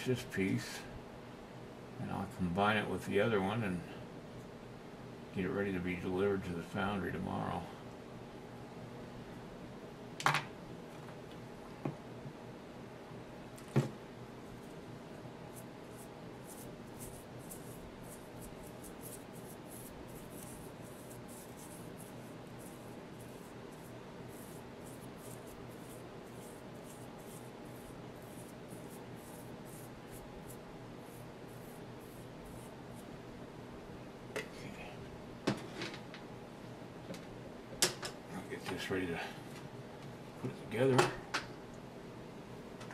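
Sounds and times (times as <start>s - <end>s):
steady low hum: 0.0s - 35.5s
brush scratching on clay: 15.5s - 33.1s.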